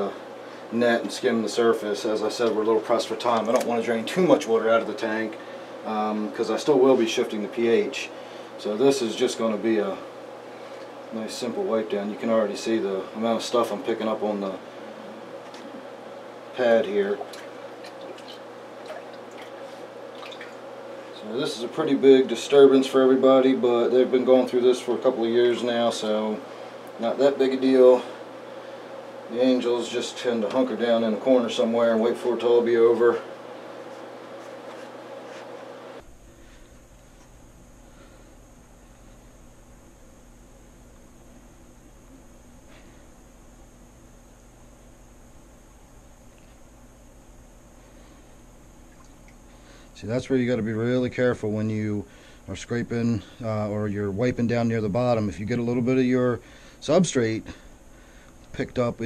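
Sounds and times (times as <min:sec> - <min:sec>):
steady hum: 0:00.0 - 0:59.0
water dripping and trickling: 0:17.2 - 0:20.6.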